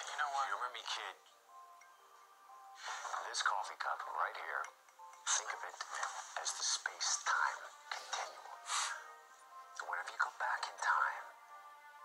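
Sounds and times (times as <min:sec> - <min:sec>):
soft background music: 0:00.0 - 0:12.0
man speaking quietly: 0:03.1 - 0:08.9.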